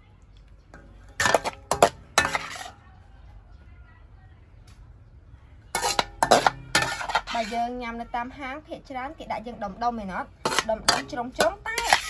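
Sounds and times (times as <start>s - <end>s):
dishes and cutlery clinking: 0.7s - 2.8s, 5.8s - 7.7s, 10.4s - 12.0s.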